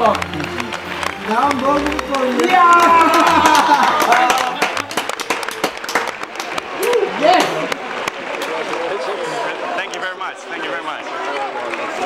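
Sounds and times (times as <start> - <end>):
people talking over one another: 0.0 - 12.0.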